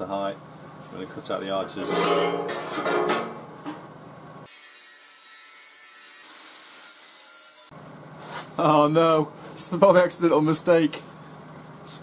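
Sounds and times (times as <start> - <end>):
steel being cut with hiss: 4.4 - 7.7.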